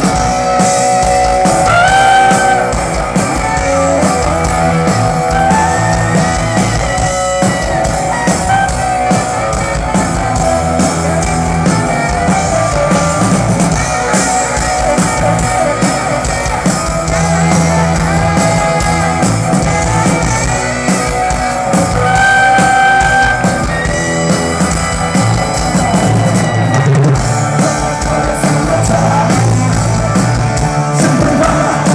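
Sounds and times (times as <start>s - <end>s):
bass: 0.0s - 31.9s
drums: 0.0s - 31.9s
electric guitar: 0.0s - 31.9s
saxophone: 1.1s - 24.9s.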